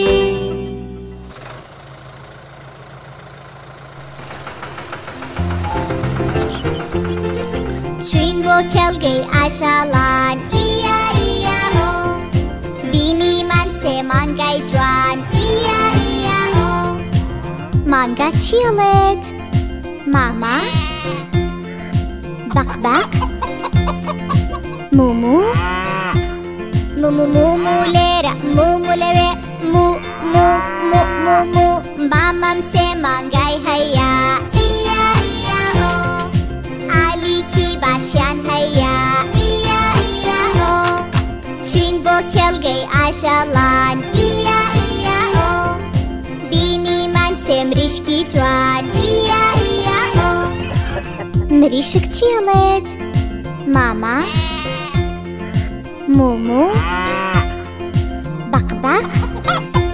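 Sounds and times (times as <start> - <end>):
upbeat children's song music: 0.0 - 1.2, 5.1 - 59.9
cartoon tractor engine chugging: 1.1 - 9.3
cow mooing: 25.4 - 26.4, 30.0 - 31.4, 56.7 - 57.6.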